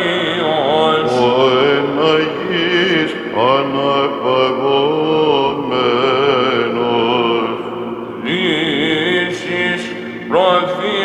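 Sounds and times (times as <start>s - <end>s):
low held vocal drone: 0.0s - 11.0s
voices chanting slow melody: 0.0s - 11.0s.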